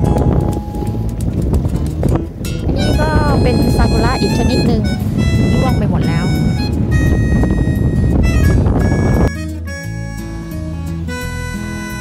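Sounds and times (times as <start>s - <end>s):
wind buffeting microphone: 0.0s - 10.5s
person speaking: 2.8s - 6.4s.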